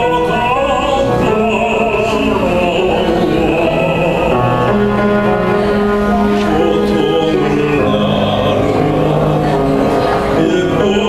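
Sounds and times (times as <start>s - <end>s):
male tenor singing: 0.0s - 11.0s
piano accompaniment: 0.0s - 11.0s.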